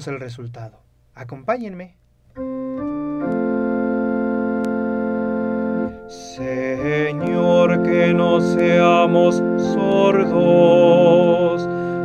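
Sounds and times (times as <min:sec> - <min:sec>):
electronic keyboard organ chords: 0:02.3 - 0:12.0.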